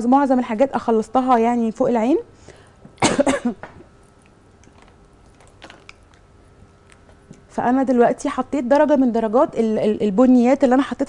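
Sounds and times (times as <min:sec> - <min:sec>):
person coughing: 0:03.0 - 0:03.7.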